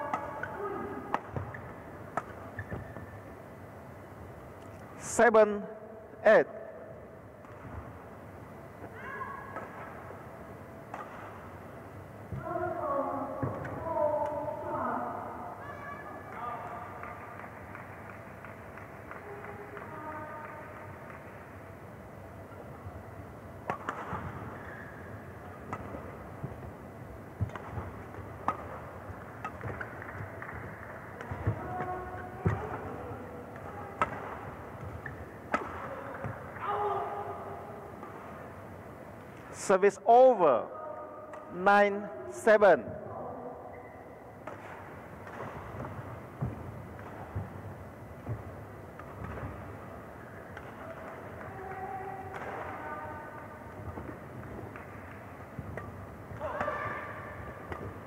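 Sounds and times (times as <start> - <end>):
racket striking shuttlecock: 0.1 - 3.1, 8.8 - 10.2, 10.8 - 11.6, 23.6 - 26.7, 27.3 - 36.6, 44.4 - 58.0.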